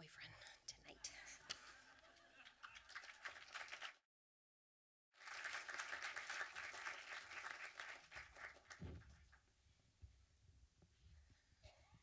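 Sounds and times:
audience applause: 0:01.6 - 0:04.0, 0:05.2 - 0:09.4.

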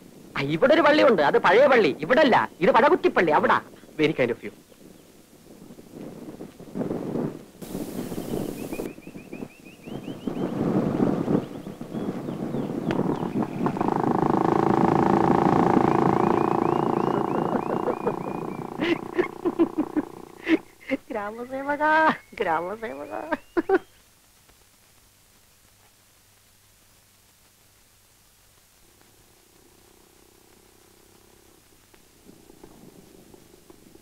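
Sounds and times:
motorcycle engine running: 0:12.9 - 0:20.7, 0:28.9 - 0:33.9
high chirps: 0:13.1 - 0:20.8
man's vocal sounds: 0:13.8 - 0:21.1.

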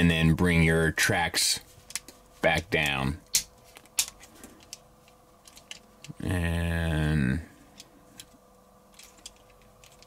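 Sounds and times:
plastic toy parts clicking: 0:04.0 - 0:04.8, 0:05.4 - 0:06.2, 0:07.8 - 0:10.0.

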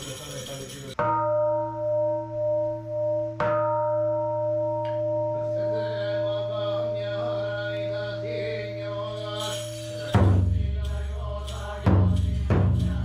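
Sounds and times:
bowl bell ringing: 0:00.0 - 0:07.0, 0:08.0 - 0:13.0.

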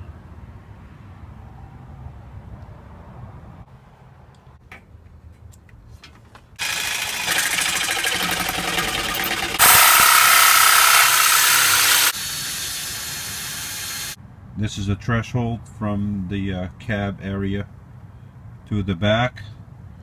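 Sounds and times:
electric jigsaw cutting metal: 0:06.6 - 0:14.2.

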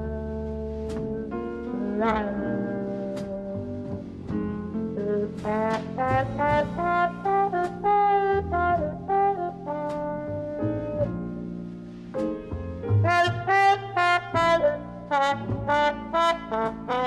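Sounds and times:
low bass notes: 0:00.0 - 0:17.0
muted trombone jazz solo: 0:00.0 - 0:17.0.

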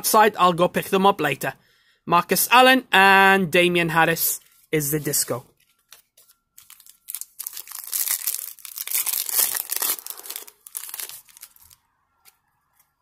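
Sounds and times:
foil wrapper tearing and crinkling: 0:06.6 - 0:11.8.

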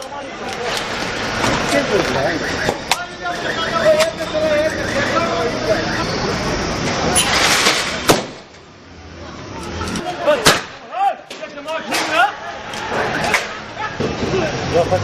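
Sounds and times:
people shouting: 0:02.9 - 0:06.6, 0:09.4 - 0:14.5.

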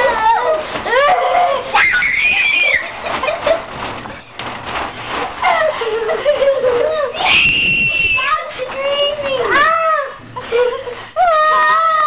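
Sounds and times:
child screaming: 0:01.4 - 0:02.9.

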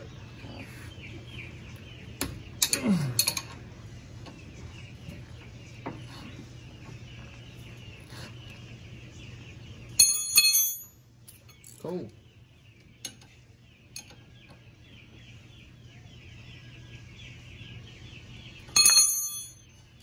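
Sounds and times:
tools clinking on metal: 0:02.6 - 0:03.6, 0:10.0 - 0:11.9, 0:18.7 - 0:19.7.

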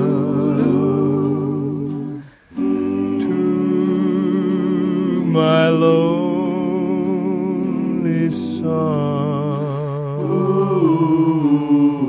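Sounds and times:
singing with vibrato on old radio: 0:00.0 - 0:12.0.

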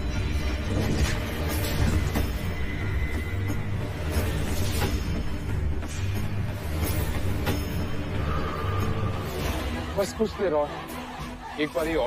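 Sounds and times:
dramatic background score: 0:00.0 - 0:12.0.

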